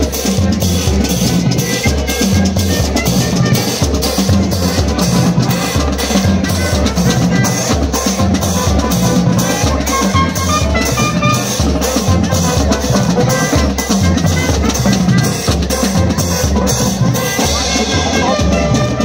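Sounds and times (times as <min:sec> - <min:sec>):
bass drums: 0:00.0 - 0:19.0
brass melody: 0:00.0 - 0:19.0
cymbals: 0:00.0 - 0:19.0
snare drums: 0:00.0 - 0:19.0.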